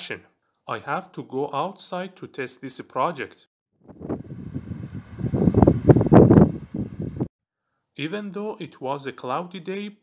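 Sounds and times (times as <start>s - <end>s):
wind buffeting microphone: 3.8s - 7.3s.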